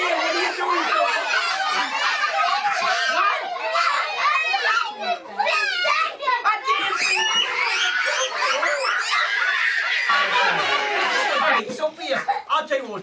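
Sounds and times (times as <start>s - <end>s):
children shouting excitedly: 0.0s - 11.6s.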